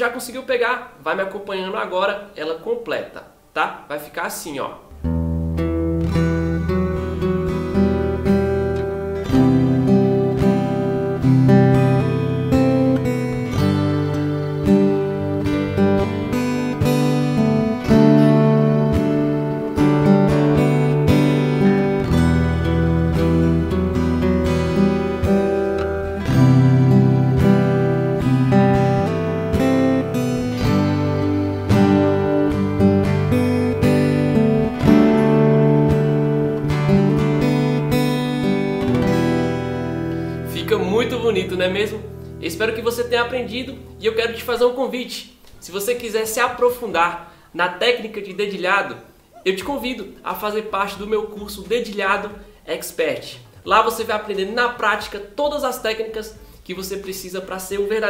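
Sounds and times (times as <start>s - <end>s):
fingerpicked acoustic guitar: 4.9s - 45.7s.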